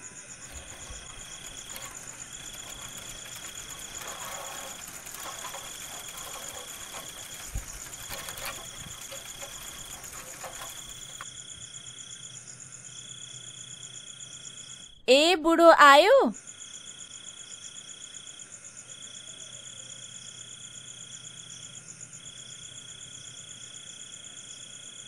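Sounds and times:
insect trill: 0.0 - 14.9, 16.4 - 25.0.

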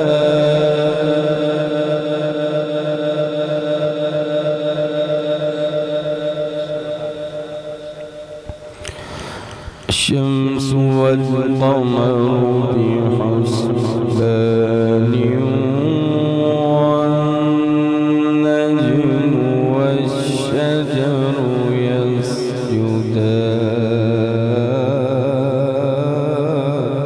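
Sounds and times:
man reciting melodically: 0.0 - 6.7, 9.8 - 27.0.

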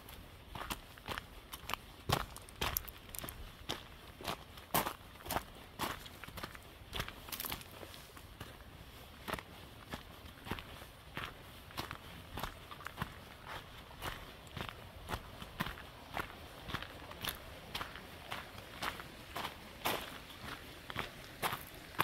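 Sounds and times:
footsteps on forest trail: 0.0 - 22.0.

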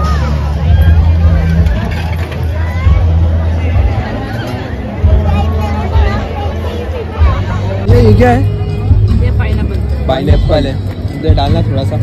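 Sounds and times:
crowd talking: 0.0 - 12.0
loud music with deep bass: 7.4 - 12.0.

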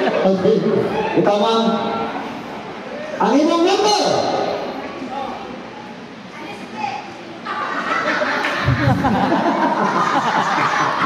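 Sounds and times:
man's amplified voice echoing: 3.2 - 4.6.

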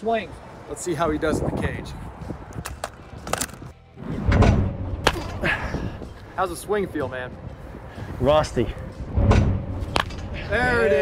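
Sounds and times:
baseball bat cracking balls: 5.0 - 5.4, 9.8 - 10.4
dull low thump and rumble: 9.0 - 10.0.

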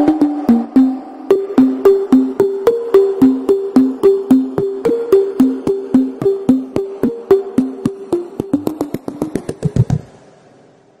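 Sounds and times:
wood-block-like jingle knocks: 0.0 - 10.1.

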